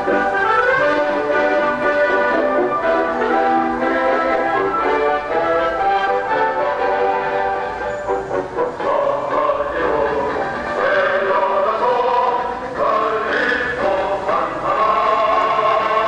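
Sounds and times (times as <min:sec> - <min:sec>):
choir singing: 0:00.0 - 0:16.0
held instrumental notes: 0:00.0 - 0:16.0.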